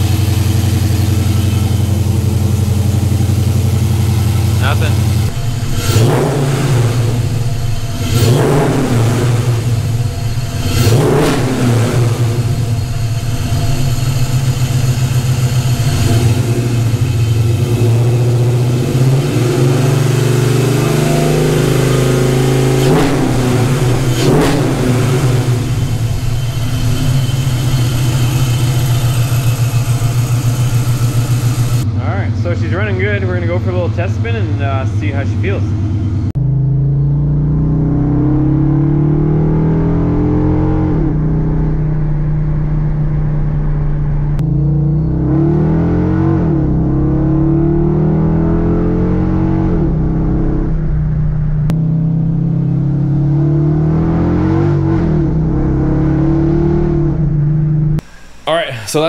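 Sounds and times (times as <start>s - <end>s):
car engine idling: 0.0s - 37.5s, 40.1s - 45.4s, 48.2s - 53.4s, 56.8s - 59.0s
engine throttle blips: 0.0s - 59.0s.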